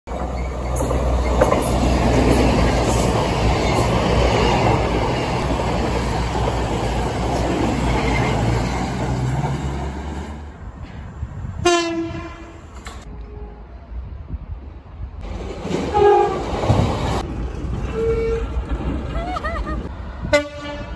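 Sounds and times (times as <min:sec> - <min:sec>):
train whistle toot: 0:15.9 - 0:16.4.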